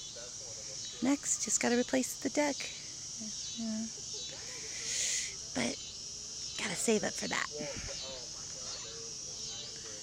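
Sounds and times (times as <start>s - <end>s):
faint distant voices talking: 0.0s - 10.0s
insects chorus: 0.0s - 10.0s.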